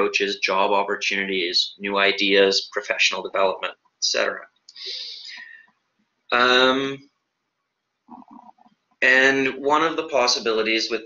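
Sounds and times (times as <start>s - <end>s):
man talking: 0.0s - 5.6s, 6.3s - 7.0s, 9.0s - 11.0s.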